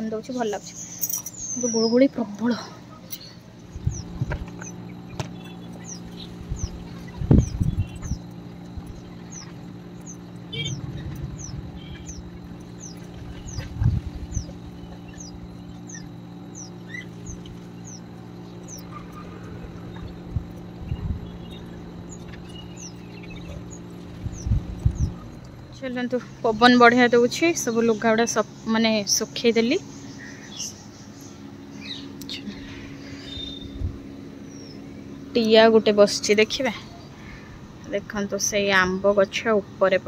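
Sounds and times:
small bird chirping: 0.0 - 39.4
low hum: 0.0 - 40.0.

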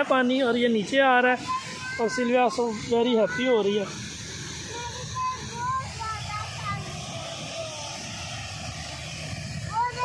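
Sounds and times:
stream running over rocks: 0.0 - 10.0.

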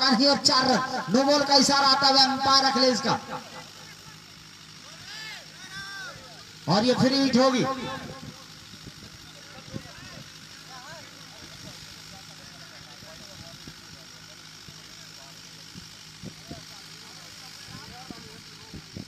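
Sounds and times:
distant men talking: 0.0 - 19.0.

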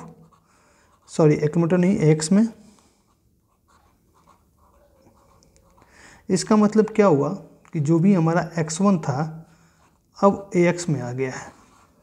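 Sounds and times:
marker pen writing on paper: 0.0 - 1.5, 3.1 - 5.9, 11.3 - 12.0.

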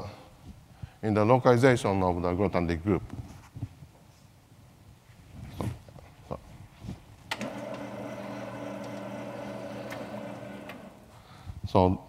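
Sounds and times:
electric motor humming: 7.3 - 11.1.

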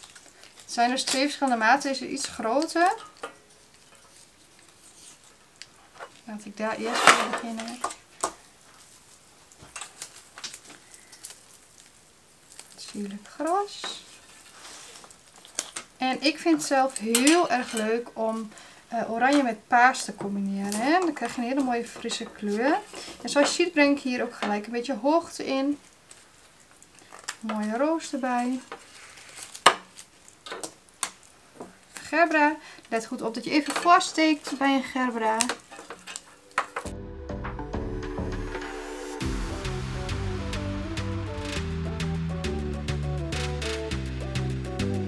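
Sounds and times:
flower stems rustling: 0.0 - 36.9.

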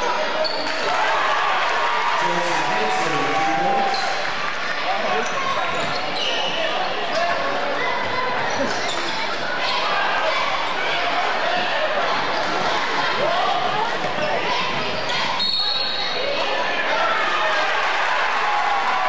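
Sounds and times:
spectators talking: 0.0 - 19.0
referee's whistle: 15.3 - 16.2.

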